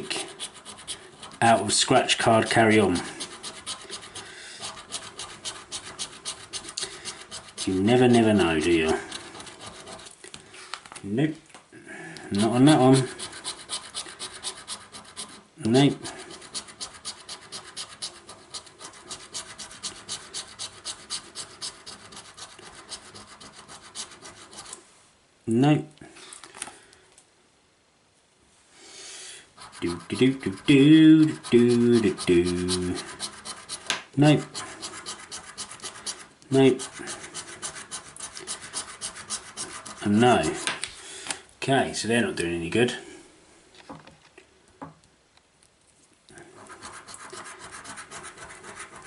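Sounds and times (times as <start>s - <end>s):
scratchcard being scratched: 0.0s - 1.8s, 2.4s - 10.2s, 12.4s - 24.8s, 29.6s - 40.8s, 46.6s - 49.0s.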